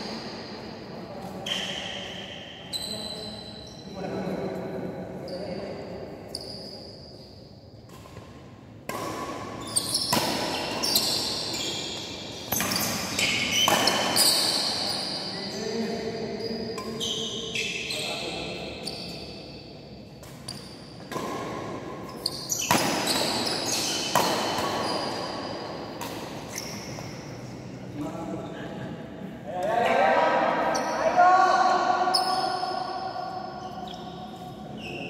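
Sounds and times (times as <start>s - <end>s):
shoes squeaking on court floor: 1.2s - 4.0s, 6.2s - 8.3s, 9.3s - 21.4s, 22.0s - 27.5s, 32.0s - 35.0s
racket hitting shuttlecock: 7.9s - 14.9s, 20.2s - 27.1s
person calling out in echoing hall: 29.4s - 32.1s.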